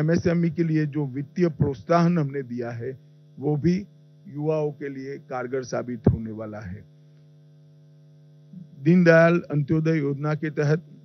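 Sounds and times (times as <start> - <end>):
man speaking: 0.0 - 6.8, 8.8 - 10.8
electrical mains hum: 0.0 - 11.0.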